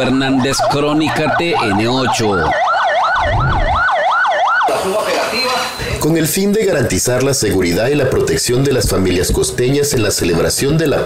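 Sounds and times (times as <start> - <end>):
police siren yelping: 0.0 - 5.8.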